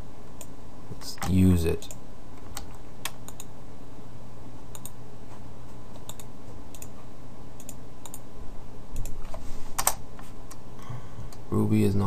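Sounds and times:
computer keyboard keystrokes: 1.2s - 3.5s, 6.0s - 6.9s, 9.0s - 10.0s.

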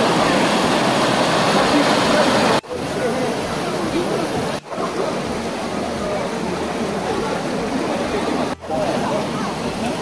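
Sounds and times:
stream rushing over rocks: 0.0s - 10.0s.

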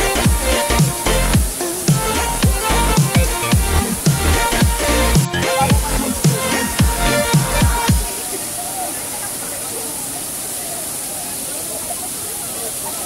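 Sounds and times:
electronic music with thumping beat: 0.0s - 8.1s
faint voices of people: 0.0s - 13.0s
waterfall rushing: 0.0s - 13.0s.

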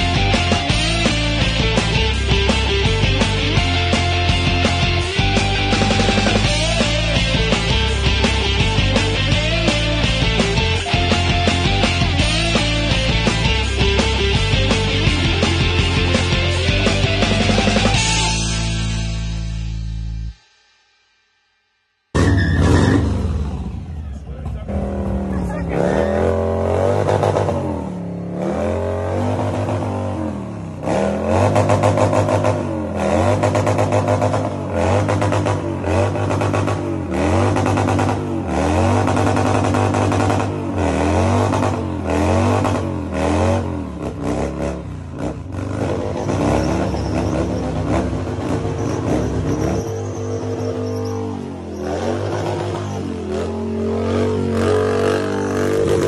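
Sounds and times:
motorcycle engine revving: 0.0s - 19.8s, 22.2s - 56.0s.

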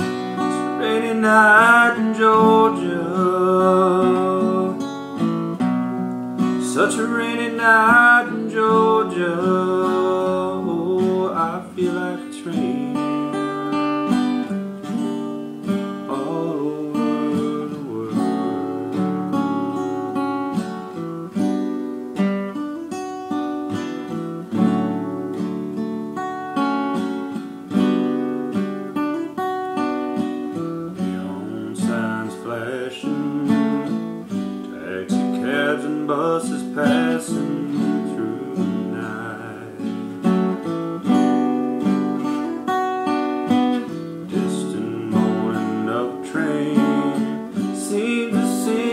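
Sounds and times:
acoustic guitar playing chords: 0.0s - 48.9s.

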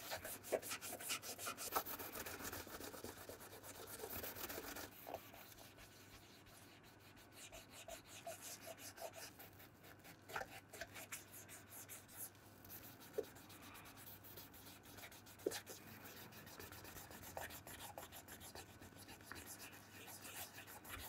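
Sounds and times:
cotton tip rubbing leather: 0.0s - 21.0s.

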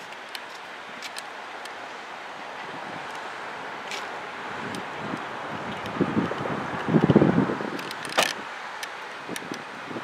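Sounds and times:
wind buffeting microphone: 2.6s - 10.0s.

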